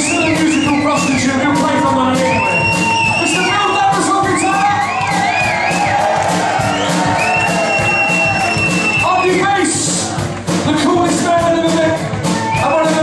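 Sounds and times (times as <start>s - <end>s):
drum beat: 0.0s - 13.0s
live band playing: 0.0s - 13.0s
crowd cheering and whooping: 2.3s - 9.6s, 12.2s - 13.0s.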